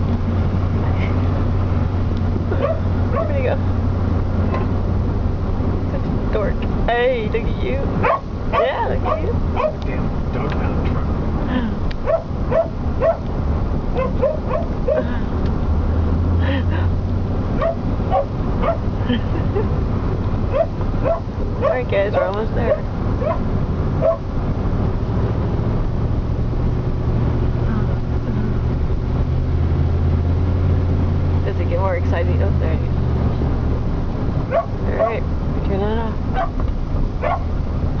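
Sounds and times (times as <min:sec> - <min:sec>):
truck engine idling: 0:00.0 - 0:38.0
vehicle humming: 0:00.0 - 0:38.0
dog yipping and whining: 0:02.6 - 0:03.4, 0:12.0 - 0:13.2, 0:14.0 - 0:15.0, 0:17.6 - 0:18.8, 0:20.5 - 0:21.8, 0:22.7 - 0:24.2, 0:34.5 - 0:35.2, 0:37.2 - 0:37.5.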